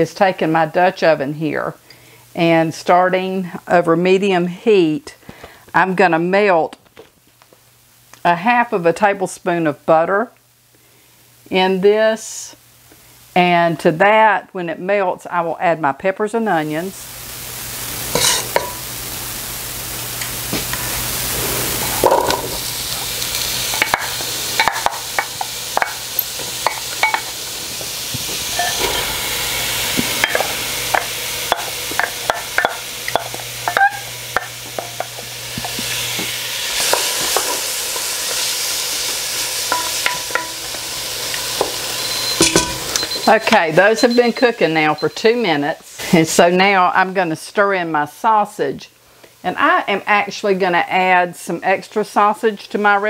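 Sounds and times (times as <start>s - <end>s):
vegetables sizzling in butter: 16.2s - 53.0s
wooden spoon scraping a pot: 18.2s - 18.7s.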